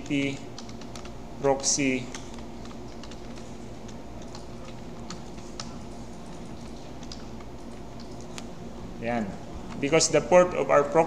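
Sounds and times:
keyboard typing: 0.0s - 8.5s
steady low hum: 0.0s - 11.0s.

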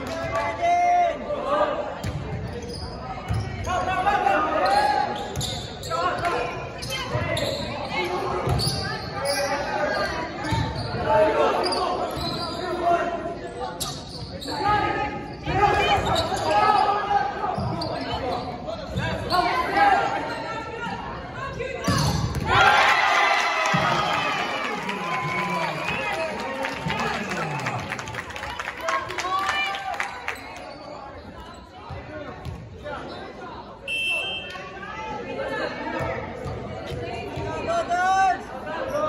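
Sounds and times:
echoing voices in gymnasium: 0.0s - 39.0s.

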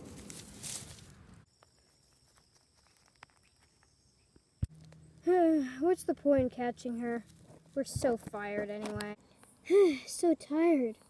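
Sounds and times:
dry grass and pine needles rustling: 0.0s - 5.6s, 6.2s - 9.6s.

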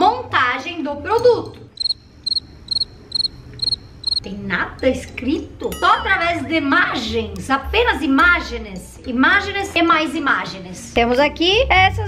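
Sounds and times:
cricket chirping: 1.8s - 4.2s.

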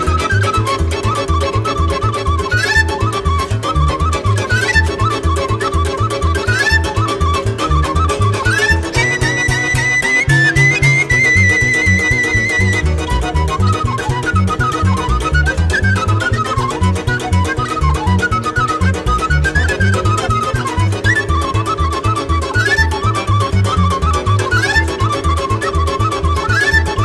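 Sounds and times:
bass and chord accompaniment: 0.0s - 26.4s
wooden flute melody: 0.0s - 27.0s.

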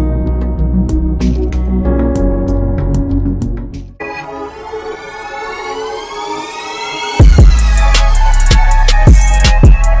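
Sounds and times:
synth riser sweeping upward: 4.0s - 8.3s.

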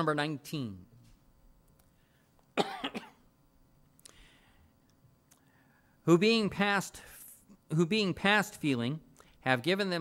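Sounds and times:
man coughing: 2.6s - 3.3s.

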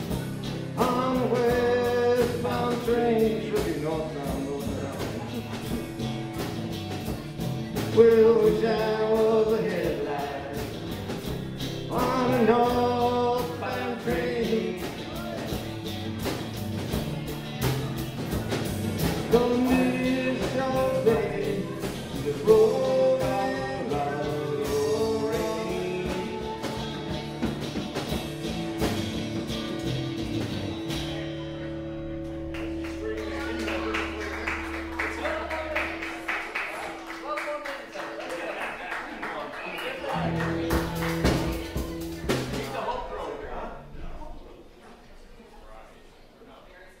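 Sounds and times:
strummed acoustic guitars: 0.0s - 37.2s, 40.1s - 43.0s
faint indistinct talk: 0.0s - 47.0s
people singing: 0.8s - 5.3s, 7.8s - 11.0s, 11.9s - 15.7s, 19.0s - 27.5s.

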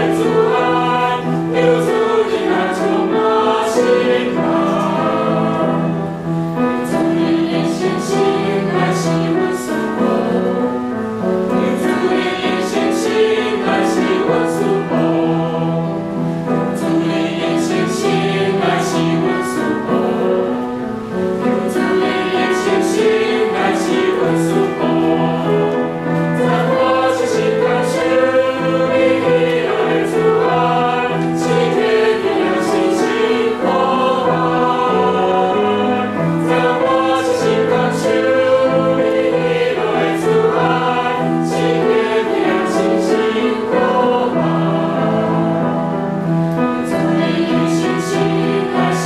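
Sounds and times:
mixed choir singing a hymn: 0.0s - 49.0s.

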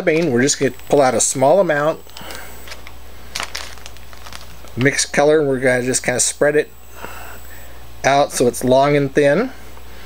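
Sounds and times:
plastic bag crinkling and rustling: 0.0s - 6.2s
steady low hum: 0.0s - 10.0s.

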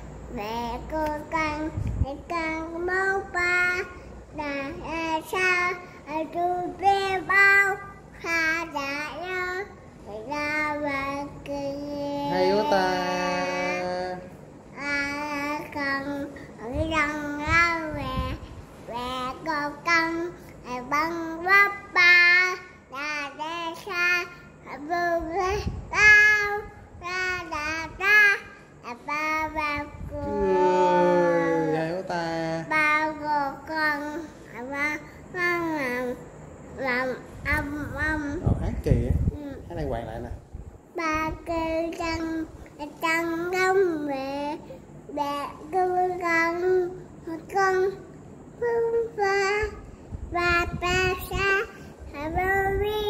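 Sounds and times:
toddler singing: 0.3s - 31.8s, 32.6s - 36.2s, 36.8s - 38.4s, 40.9s - 53.0s.

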